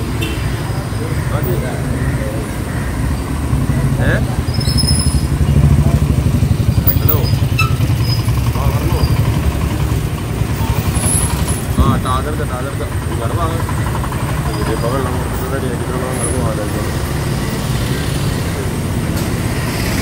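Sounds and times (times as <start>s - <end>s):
truck engine idling: 0.0s - 20.0s.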